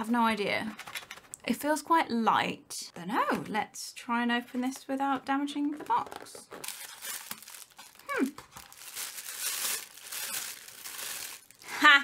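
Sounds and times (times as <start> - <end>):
cardboard packaging crinkling: 5.7 - 11.8.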